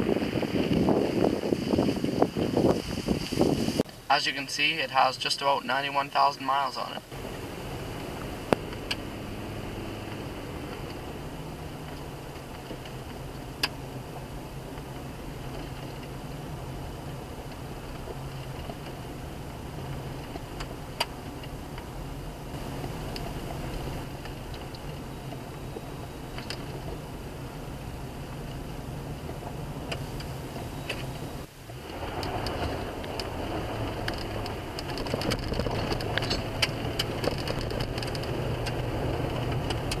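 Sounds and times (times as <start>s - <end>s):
car engine pulling steadily: 0.0s - 40.0s
tyre noise on gravel: 22.5s - 40.0s.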